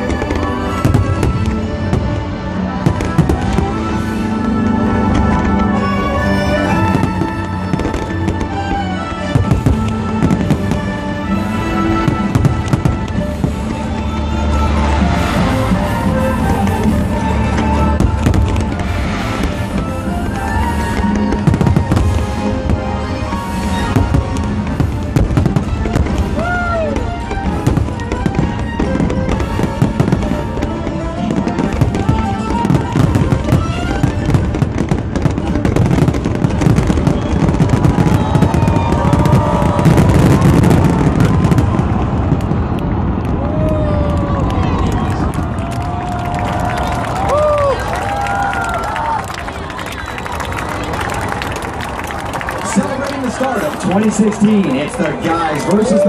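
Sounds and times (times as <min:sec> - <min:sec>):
fireworks bursting and crackling: 0:00.0 - 0:56.0.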